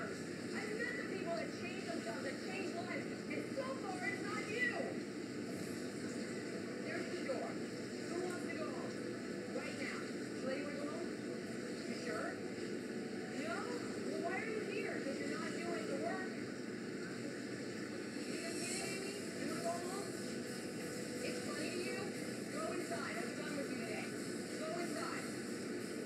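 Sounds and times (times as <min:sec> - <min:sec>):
steady background noise: 0:00.0 - 0:26.0.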